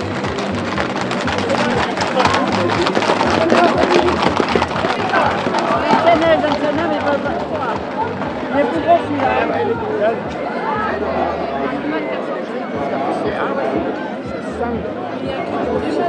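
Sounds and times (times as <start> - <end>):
hooves clattering on asphalt: 0.0 - 9.8
crowd shouting: 0.0 - 16.0.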